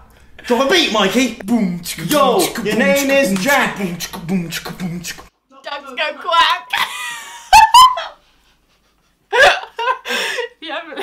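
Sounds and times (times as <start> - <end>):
woman laughing hard: 6.7 - 11.0.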